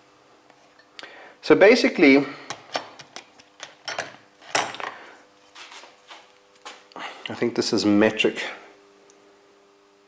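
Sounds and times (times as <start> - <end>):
metal tools clinking and knocking: 3.6 - 4.9.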